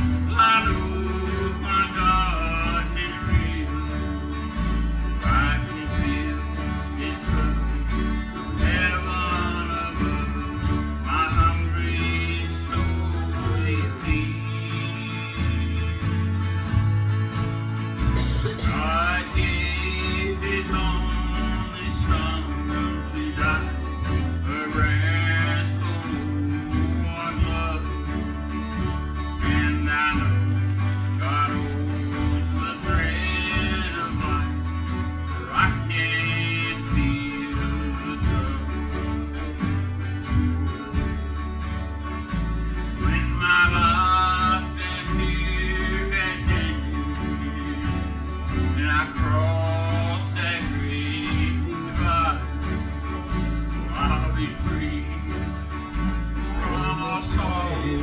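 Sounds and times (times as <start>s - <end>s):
country song on acoustic guitar: 0.0s - 58.0s
steady bass line: 0.0s - 58.0s.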